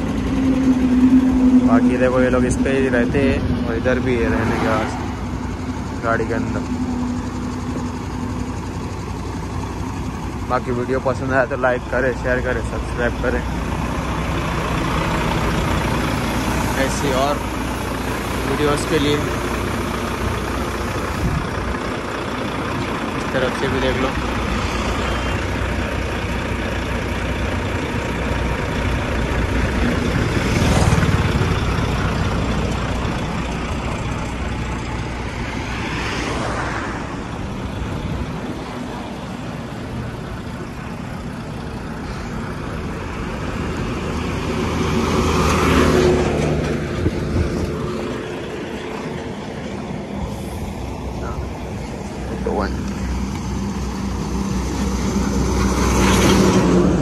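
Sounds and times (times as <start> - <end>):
diesel truck engine running: 0.0 - 57.0
tipper truck passing close: 0.0 - 57.0
vehicles passing: 0.0 - 57.0.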